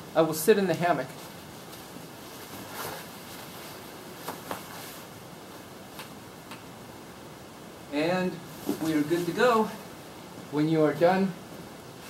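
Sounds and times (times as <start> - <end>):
steady background hiss: 0.0 - 12.0
hammock rustling: 1.0 - 6.2, 8.4 - 9.9.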